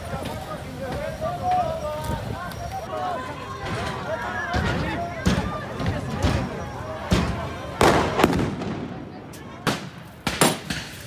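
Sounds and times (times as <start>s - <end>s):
crowd noise: 0.0s - 11.0s
firecrackers banging: 0.0s - 11.0s.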